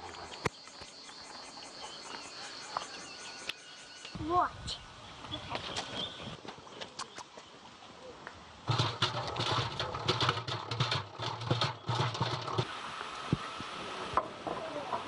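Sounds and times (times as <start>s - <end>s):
honey extractor rattling: 8.7s - 12.7s.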